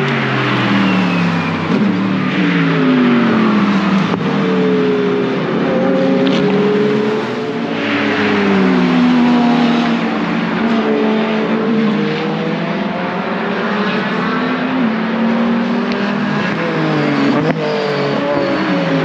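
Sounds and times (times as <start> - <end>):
race car engines passing: 0.0 - 19.0.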